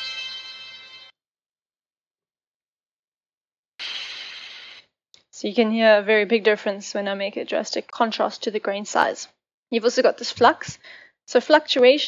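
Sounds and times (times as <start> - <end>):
grainy smeared audio sample: 3.8 - 4.8.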